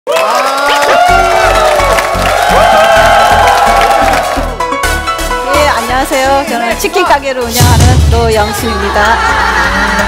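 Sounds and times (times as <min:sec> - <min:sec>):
crowd cheering and clapping: 0:00.0 - 0:06.5, 0:08.3 - 0:10.0.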